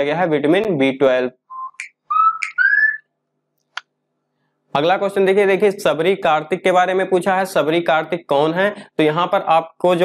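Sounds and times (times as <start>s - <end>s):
person whistling: 1.5s - 3.0s.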